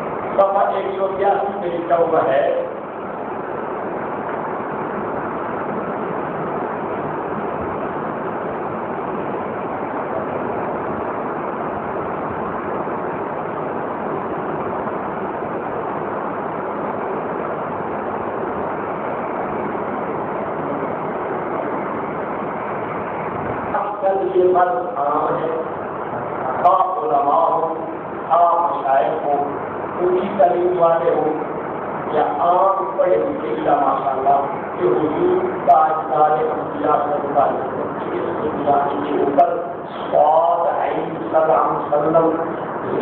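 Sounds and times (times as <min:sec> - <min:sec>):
person speaking: 0:23.7 - 0:43.0.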